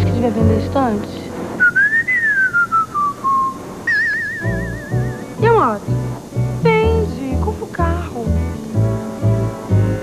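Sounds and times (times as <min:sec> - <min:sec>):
soft background music: 0:00.0 - 0:01.6, 0:03.6 - 0:10.0
whistle gliding and trilling: 0:01.6 - 0:05.5.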